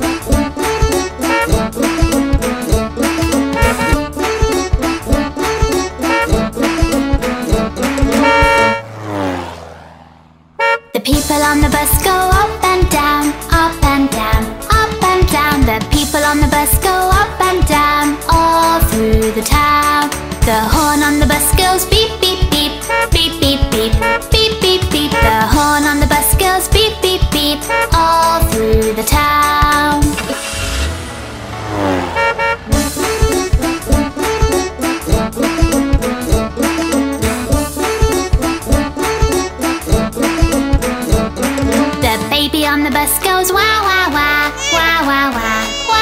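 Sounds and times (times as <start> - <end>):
music: 0.0 - 8.8, 11.0 - 31.0, 32.7 - 46.0
cartoon bus horn toot: 0.0 - 9.2, 10.6 - 11.3, 21.4 - 25.9, 27.5 - 28.5, 31.6 - 42.3, 44.2 - 46.0.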